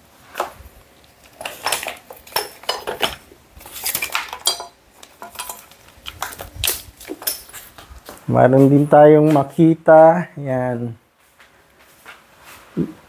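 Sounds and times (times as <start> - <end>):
power tools clattering: 1.2 - 7.7
metal clinks: 7.0 - 7.6.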